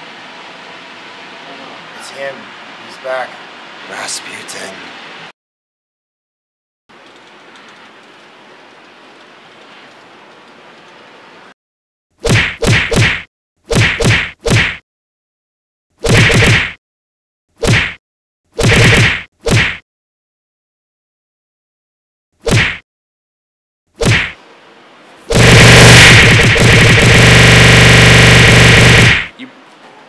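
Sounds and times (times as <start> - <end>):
punch sound effects: 12.2 - 14.8, 16.0 - 16.8, 17.6 - 18.0, 18.6 - 19.8, 22.4 - 22.8, 24.0 - 24.4, 25.3 - 29.3.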